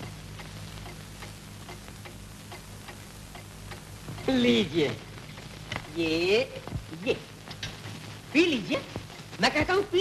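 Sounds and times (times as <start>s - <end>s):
faint even ticking: 0.0s - 8.2s
low hum and hiss: 0.0s - 10.0s.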